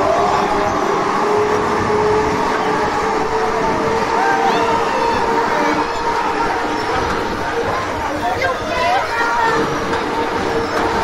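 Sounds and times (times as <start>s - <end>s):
funfair ride mechanical rumble: 0.0s - 11.0s
voices calling out: 0.0s - 11.0s.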